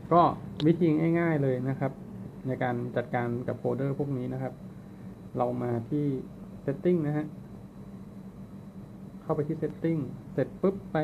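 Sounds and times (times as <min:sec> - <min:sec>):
steady low background hum: 0:00.0 - 0:11.0.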